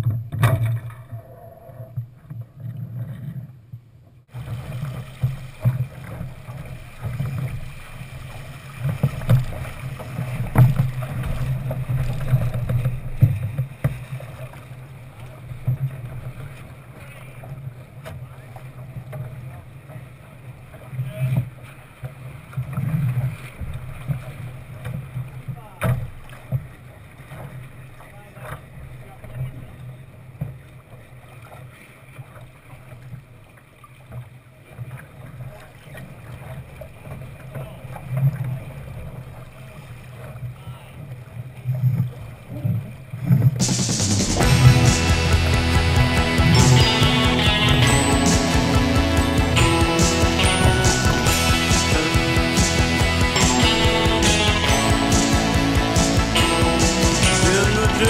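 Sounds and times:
water rushing along hull: 4.3s - 58.0s.

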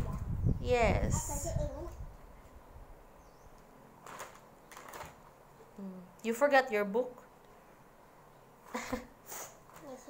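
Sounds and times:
paper page rustling: 4.0s - 5.3s.

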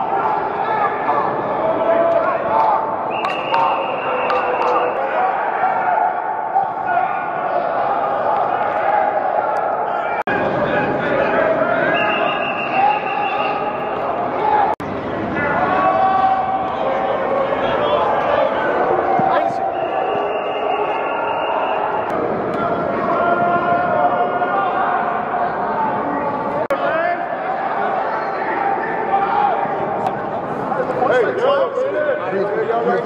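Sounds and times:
many voices calling out indoors: 0.0s - 33.0s.

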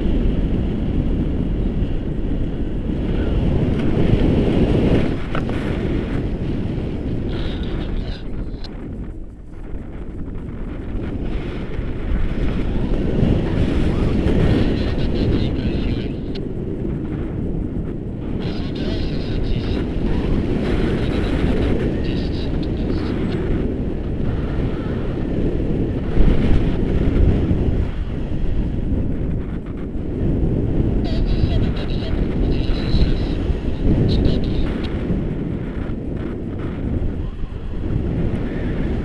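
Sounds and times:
wind buffeting microphone: 0.0s - 39.0s.

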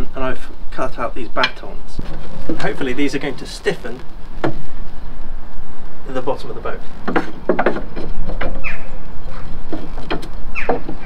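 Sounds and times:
steady background noise: 0.0s - 11.0s
wooden knock: 7.0s - 8.6s, 9.7s - 11.0s.

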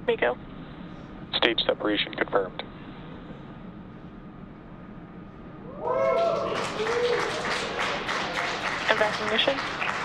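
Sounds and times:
hiss and low rumble: 0.0s - 10.0s.

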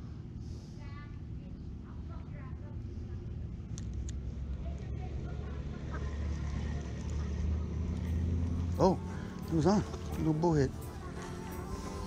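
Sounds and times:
low rumble of road traffic: 0.0s - 12.0s.

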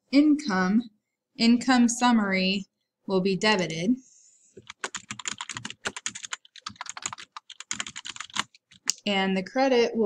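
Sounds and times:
keyboard typing: 4.6s - 9.0s.

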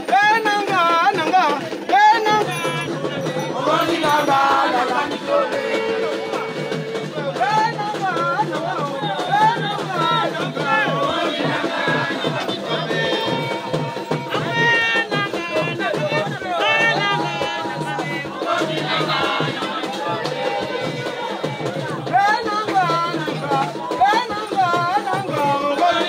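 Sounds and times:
group of voices singing: 0.0s - 26.0s
rhythmic percussion: 0.0s - 26.0s.

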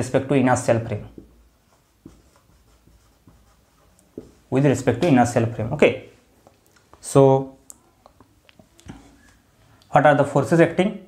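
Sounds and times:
marker writing on whiteboard: 0.7s - 5.5s.

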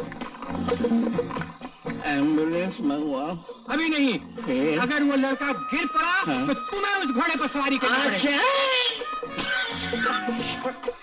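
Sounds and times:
film background music: 0.0s - 11.0s
horse whinnying: 8.0s - 10.7s.

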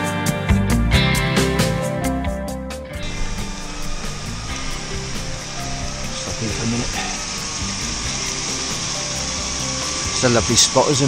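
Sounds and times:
bicycle in motion: 3.0s - 11.0s
faint background music: 3.0s - 11.0s.

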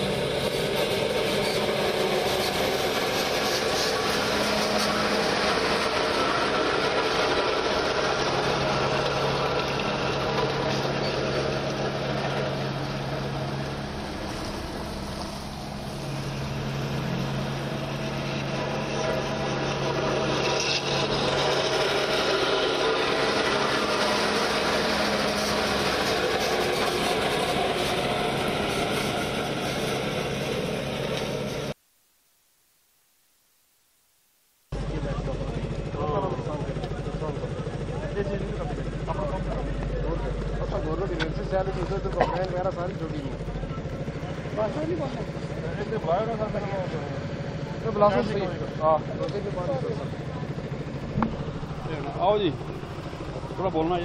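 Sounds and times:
road roller engine running: 0.0s - 31.8s, 34.7s - 54.0s.

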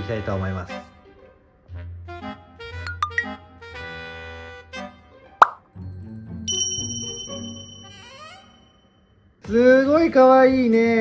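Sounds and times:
background music: 0.0s - 7.8s
cartoon plop sound effect: 2.9s - 3.4s, 5.4s - 5.6s.

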